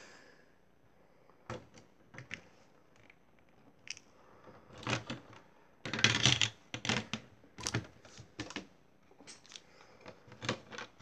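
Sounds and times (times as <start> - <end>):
plastic bricks clicking and clattering: 4.7 - 8.7.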